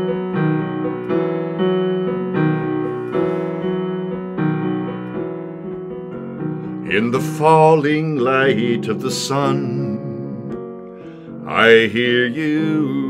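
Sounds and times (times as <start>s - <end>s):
electric piano chords: 0.0s - 13.0s.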